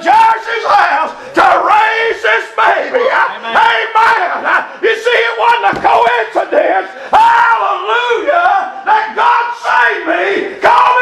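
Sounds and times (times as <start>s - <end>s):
man preaching in sing-song: 0.0s - 11.0s.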